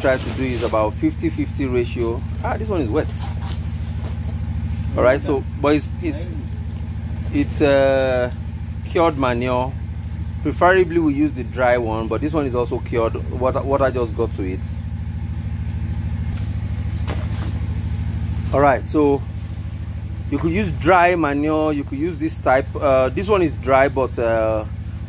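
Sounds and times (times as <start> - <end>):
engine idling: 0.0 - 25.0.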